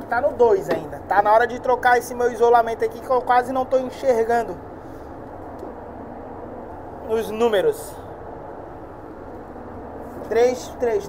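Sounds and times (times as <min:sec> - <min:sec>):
ventilation fan hum and hiss: 0:00.0 - 0:11.0.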